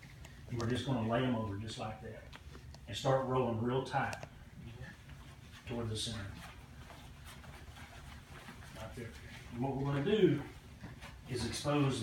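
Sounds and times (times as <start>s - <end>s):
fabric rustling and scraping on tile: 5.0s - 12.0s.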